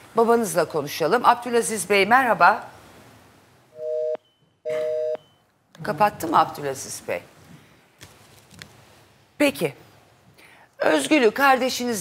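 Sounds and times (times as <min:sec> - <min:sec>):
telephone busy tone beeps: 0:03.8 - 0:05.4.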